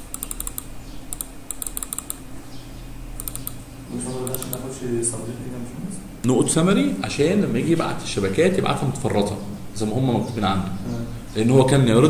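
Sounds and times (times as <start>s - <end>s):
computer keyboard typing: 0.0s - 2.2s, 3.2s - 3.6s, 4.2s - 4.7s.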